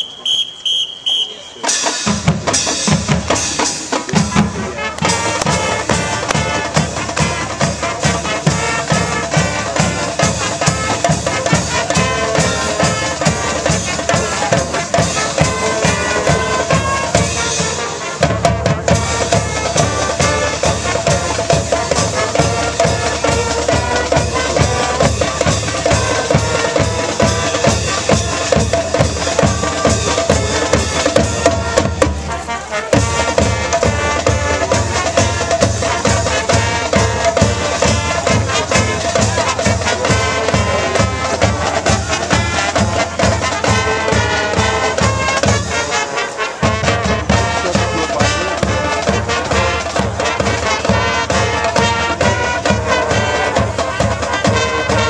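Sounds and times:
brass melody: 0.0s - 55.0s
drumline march beat: 0.0s - 55.0s
marching band playing: 0.0s - 55.0s.

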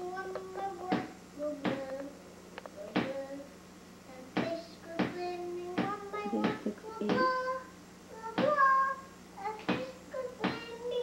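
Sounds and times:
girl singing: 0.0s - 2.2s, 2.8s - 3.5s, 4.1s - 11.0s
faint steady hum: 0.0s - 11.0s.

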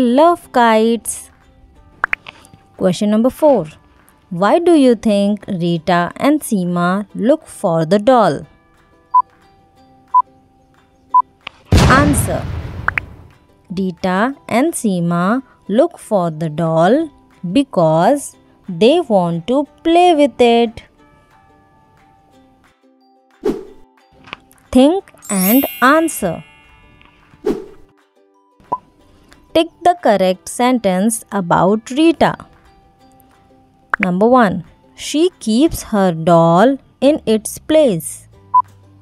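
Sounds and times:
faint background music: 0.0s - 39.0s
short blip: 12.5s - 13.3s.

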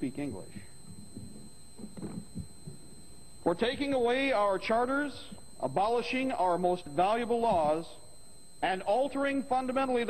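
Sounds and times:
soft low thumps: 0.0s - 3.4s
low hum of old recording: 0.0s - 10.0s.

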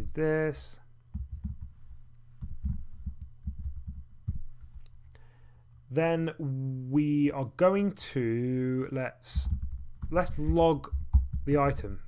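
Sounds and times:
typing on computer keyboard: 9.4s - 11.5s.

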